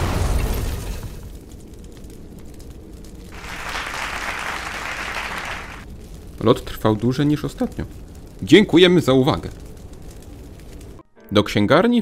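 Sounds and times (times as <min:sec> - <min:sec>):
rocket explosion rumble: 0:00.0 - 0:11.0
audience applause: 0:03.3 - 0:05.8.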